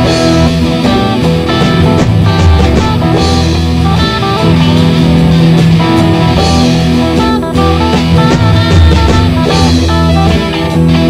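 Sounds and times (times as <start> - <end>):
instrumental rock electric guitars: 0.0 - 11.0.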